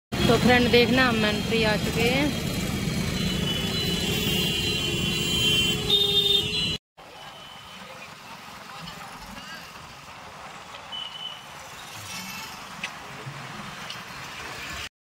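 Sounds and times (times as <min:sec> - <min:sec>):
street traffic noise: 0:00.1 - 0:14.9
traffic engines running: 0:00.1 - 0:14.9
vehicle horns honking: 0:03.1 - 0:06.8.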